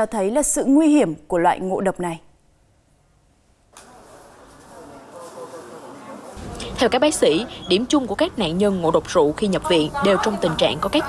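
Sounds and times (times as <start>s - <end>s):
faint indistinct voices: 3.8s - 7.7s.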